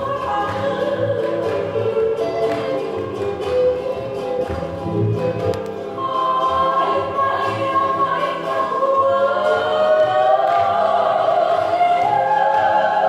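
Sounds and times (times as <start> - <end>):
voices singing held notes: 5.9 - 13.0.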